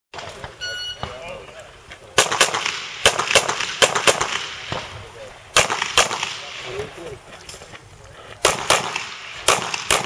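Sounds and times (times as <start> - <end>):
pistol shots: 2.2 - 4.9, 5.5 - 6.8, 8.4 - 10.0.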